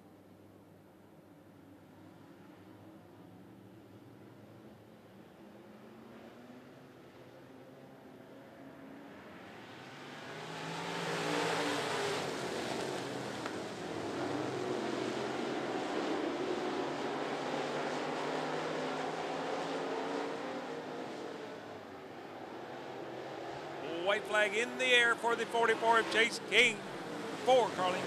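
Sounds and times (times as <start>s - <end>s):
race car engines accelerating: 8.2s - 28.0s.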